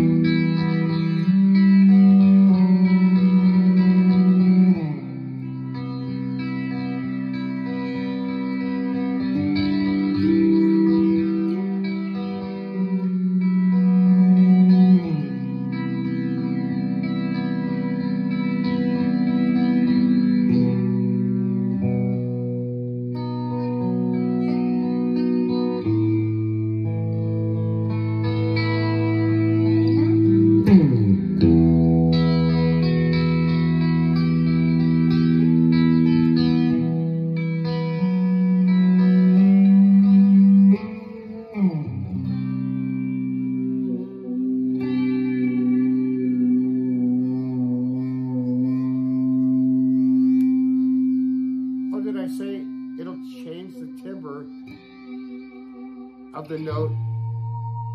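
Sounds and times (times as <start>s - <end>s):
guitar pitch swooping down: 0.0s - 57.9s
sustained electric guitar: 0.0s - 57.9s.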